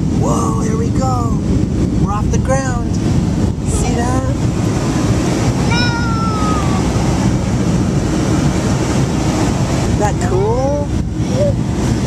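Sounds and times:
jet engine cabin rumble: 0.0 - 12.0
child's voice: 3.7 - 4.0, 5.7 - 6.9, 10.2 - 11.6.

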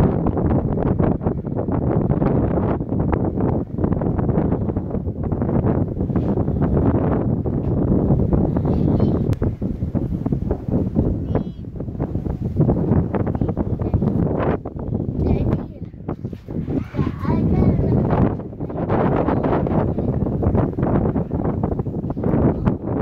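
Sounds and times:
gusty wind on microphone: 0.0 - 23.0.

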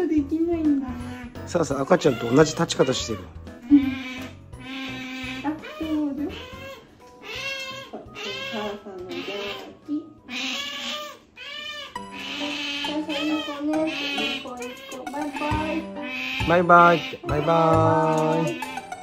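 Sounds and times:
background music: 0.0 - 19.0
otter squeaking: 0.9 - 19.0.

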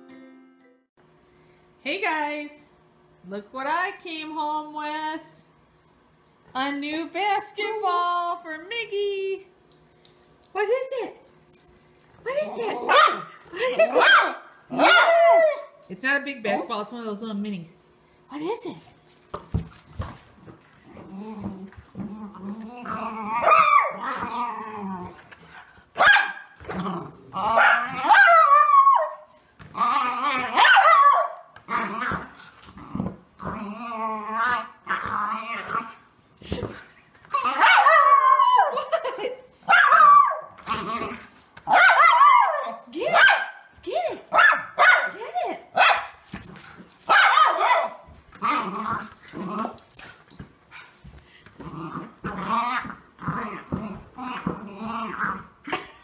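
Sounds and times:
dog growling and barking: 12.3 - 15.7, 20.8 - 36.1, 37.3 - 43.4, 45.8 - 51.0, 51.6 - 55.9.

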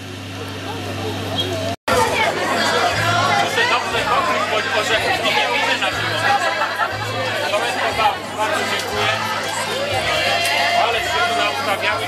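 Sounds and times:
crowd chatter: 0.0 - 12.0
music playing: 1.9 - 12.0.

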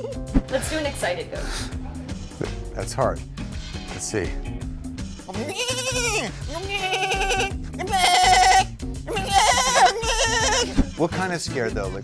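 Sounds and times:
background music: 0.0 - 12.0
man imitating goat bleats: 5.3 - 10.8.

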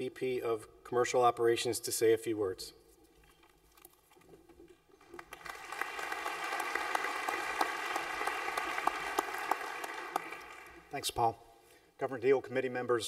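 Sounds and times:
audience applauding: 5.0 - 10.9.

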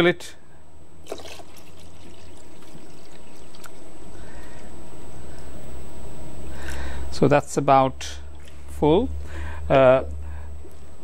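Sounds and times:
water pouring into tank: 1.0 - 3.8.

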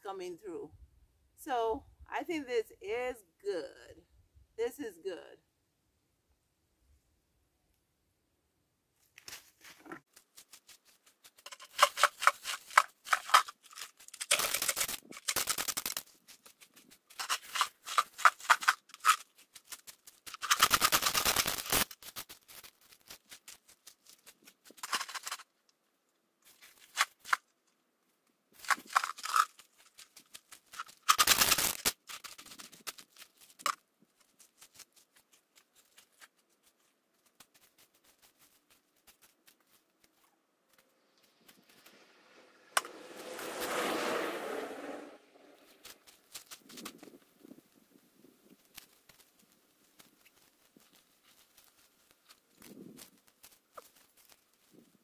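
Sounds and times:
gravel rattling in plastic bucket: 9.7 - 25.4, 28.6 - 33.8.

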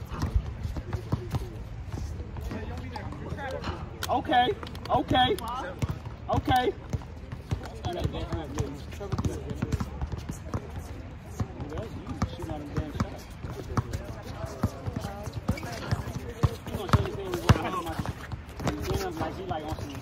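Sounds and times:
basketball bouncing on hard court: 5.8 - 20.0.

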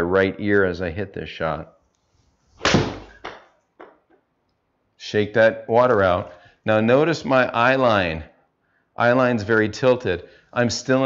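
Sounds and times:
golf club striking ball: 2.6 - 4.0.

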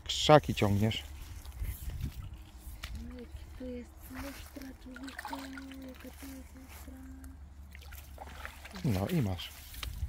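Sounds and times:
water splashing and sloshing: 0.6 - 10.0.

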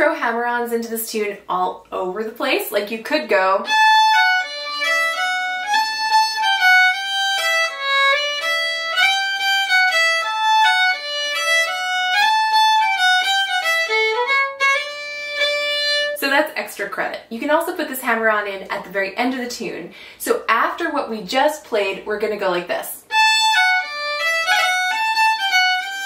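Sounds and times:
solo fiddle playing jig: 3.6 - 16.2, 23.1 - 26.0.

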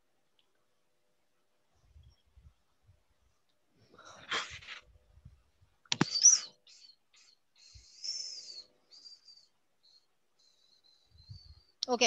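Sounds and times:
sharp click: 5.9 - 6.5
bird chirping: 6.0 - 11.8.

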